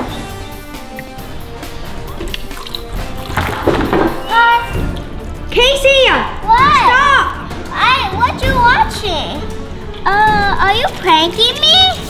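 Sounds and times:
background music: 0.0 - 12.0
water pouring into plastic tub: 2.2 - 4.2.

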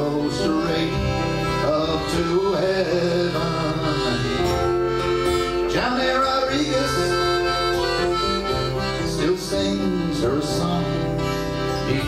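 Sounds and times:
fingerpicked acoustic guitar: 0.0 - 12.0
piano accordion melody: 0.0 - 12.0.

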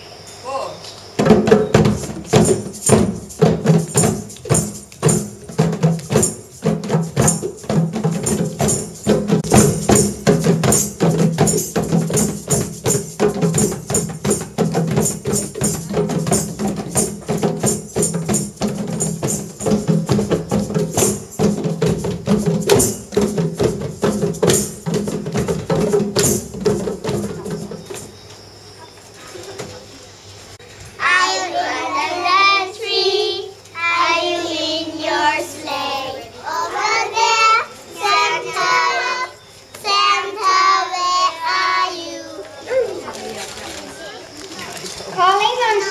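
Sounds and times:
tambourines: 0.0 - 43.0
children playing hand drums: 1.2 - 28.2.

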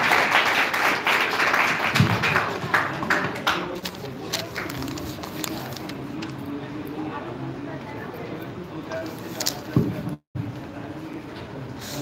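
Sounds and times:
audience applause: 0.0 - 3.7.

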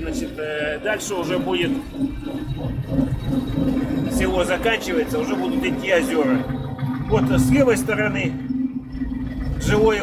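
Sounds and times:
tractor diesel engine rumbling: 0.0 - 10.0.

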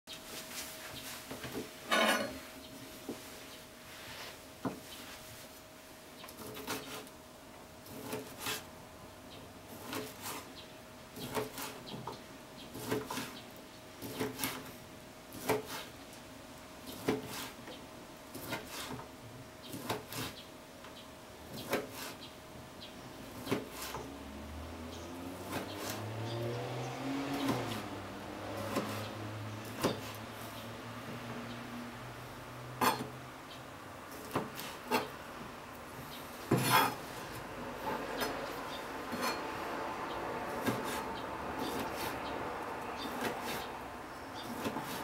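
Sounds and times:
knife chopping on plastic board: 15.3 - 15.9, 16.9 - 17.5, 21.5 - 22.2, 23.4 - 24.1, 28.6 - 29.0, 29.6 - 30.2.

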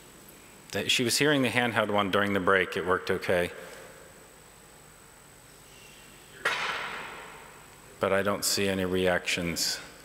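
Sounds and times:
faint high whine: 0.0 - 10.0.

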